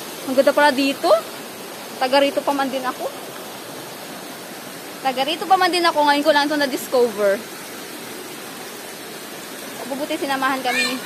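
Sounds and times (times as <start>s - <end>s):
stream water rushing: 0.0s - 11.0s.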